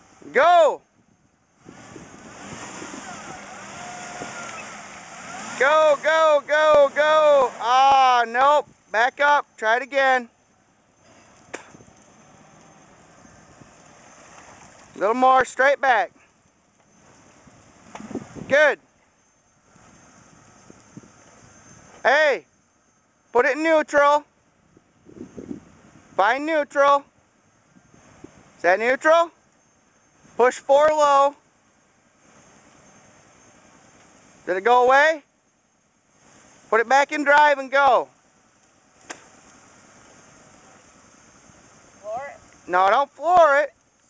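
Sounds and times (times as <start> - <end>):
car engine under throttle: 0.0 - 22.1
outdoor background noise: 0.0 - 44.0
distant car engine running: 0.9 - 26.2, 27.1 - 44.0.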